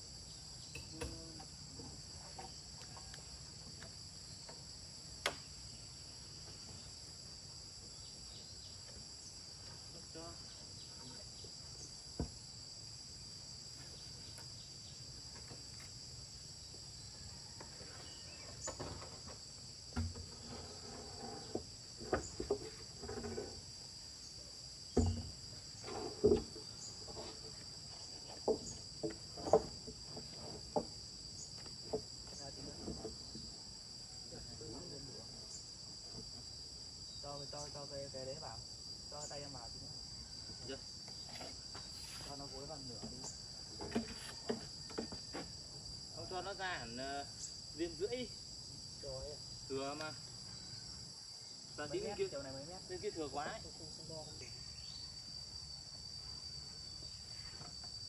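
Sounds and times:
insects chorus ringing: 0.0 - 58.0.

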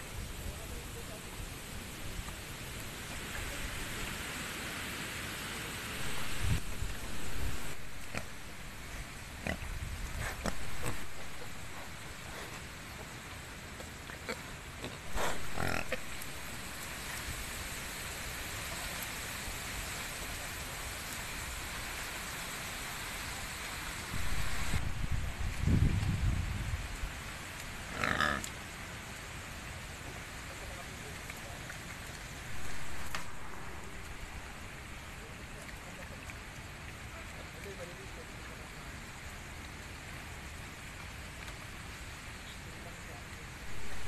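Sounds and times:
background hiss: 0.0 - 44.0
pig grunting: 14.2 - 16.4.

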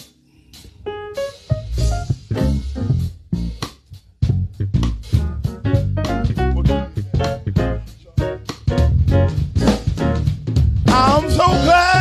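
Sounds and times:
band playing gospel music: 1.1 - 3.9, 4.7 - 12.0
drum hits: 1.2 - 12.0.

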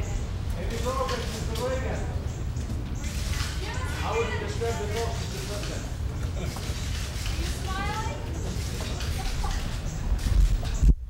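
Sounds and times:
footsteps on stone floor: 2.6 - 10.9.

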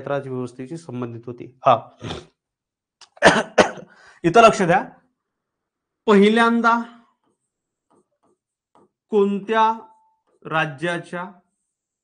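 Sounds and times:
man coughing: 3.1 - 3.9.

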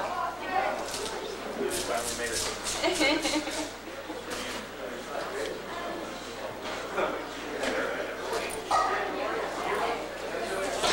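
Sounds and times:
indistinct chatter of voices: 0.0 - 10.9.

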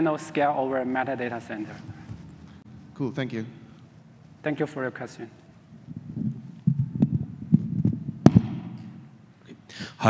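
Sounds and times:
microphone handling thumps: 5.9 - 9.0.

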